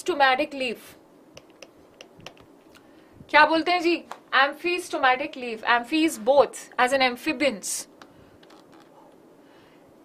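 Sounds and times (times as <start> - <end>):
stylus tapping on pen tablet: 1.4 - 2.5.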